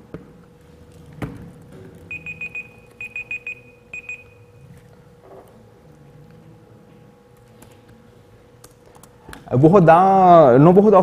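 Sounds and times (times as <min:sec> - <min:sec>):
electronic alarm beeping: 0:02.1 - 0:04.6.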